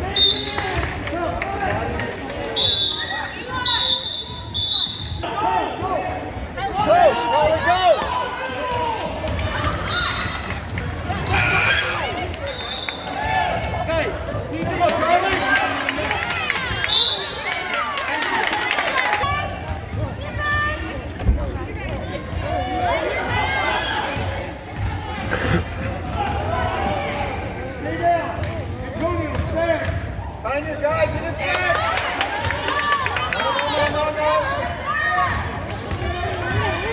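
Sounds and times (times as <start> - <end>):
voices of people: 0.0 - 36.9.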